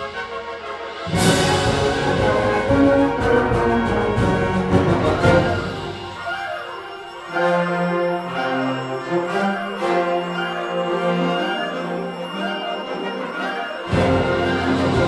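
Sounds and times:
concert band playing a march: 0:00.0 - 0:15.0.

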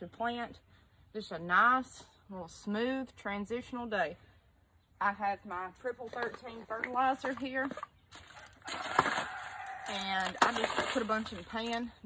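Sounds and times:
rooster crowing: 0:08.7 - 0:09.9
granules rattling in plastic pan: 0:08.7 - 0:11.5.

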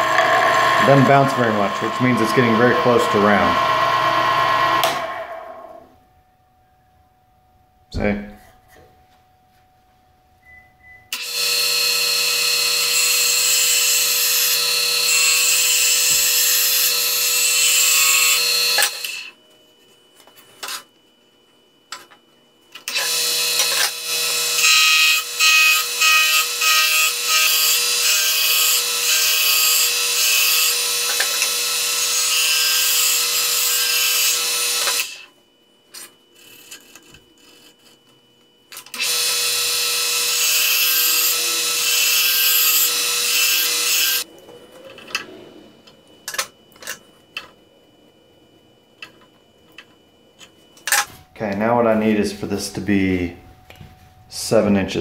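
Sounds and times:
gouge cutting spinning wood: 0:00.0 - 0:05.7, 0:22.9 - 0:35.2
lathe humming: 0:00.0 - 0:05.9.

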